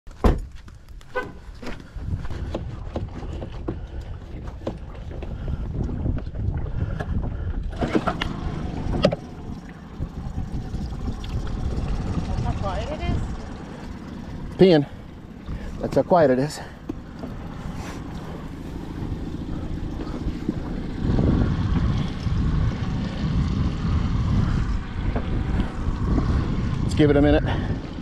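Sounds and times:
outboard motor idling: 0:01.2 - 0:28.0.

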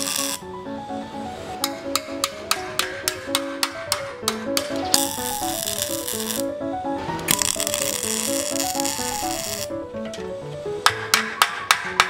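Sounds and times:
welder arc crackling: 0:00.0 - 0:00.6, 0:01.3 - 0:09.8
hammer chipping at weld: 0:01.6 - 0:06.3
bouncing background music: 0:01.6 - 0:12.0.

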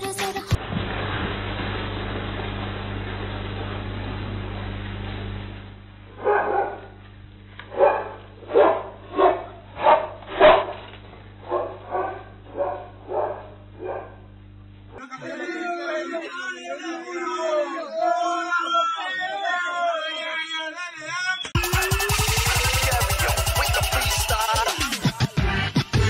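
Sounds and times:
dog barking: 0:06.2 - 0:07.0, 0:07.7 - 0:10.8, 0:11.5 - 0:14.2.

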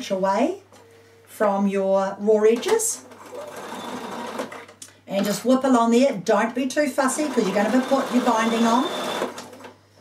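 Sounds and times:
sewing machine stitching: 0:03.1 - 0:04.7, 0:07.1 - 0:09.7.

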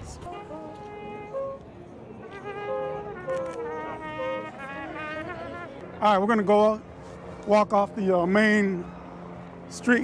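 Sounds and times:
brass band playing held notes: 0:00.2 - 0:06.4.

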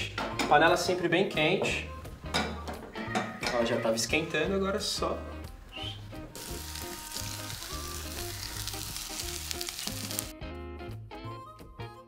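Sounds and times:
background music: 0:00.0 - 0:12.0
mushrooms sizzling in a hot pan: 0:05.8 - 0:10.3.

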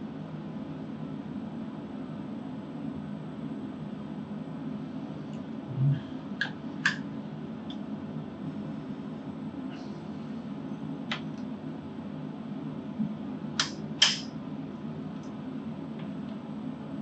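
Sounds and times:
fan-like hum: 0:00.0 - 0:17.0
sharp clicks: 0:13.6 - 0:14.3.

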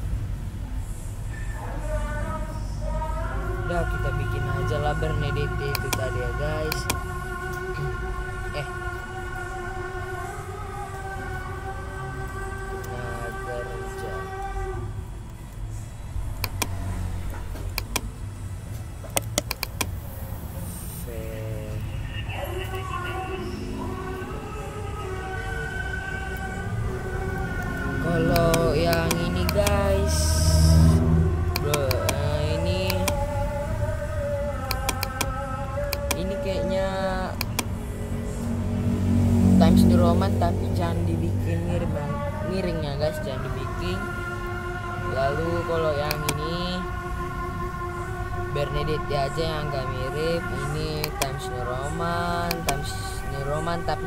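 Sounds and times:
low room hum: 0:00.0 - 0:54.0
pitched drone with overtones: 0:00.9 - 0:54.0
mouse and keyboard clicks: 0:16.4 - 0:16.8, 0:17.6 - 0:18.1, 0:19.1 - 0:20.0, 0:34.7 - 0:35.3, 0:37.4 - 0:37.7.

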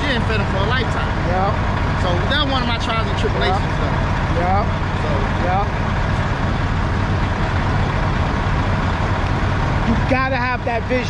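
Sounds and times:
diesel truck engine idling: 0:00.0 - 0:11.0.

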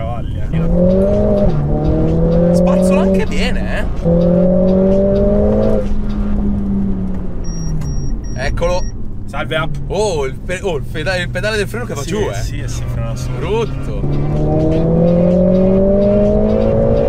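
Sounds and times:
car engine revving: 0:00.0 - 0:17.0
short electronic beeps: 0:07.4 - 0:09.0.

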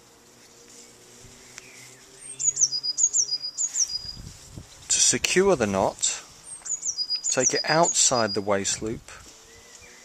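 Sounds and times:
songbird singing: 0:00.0 - 0:10.0.

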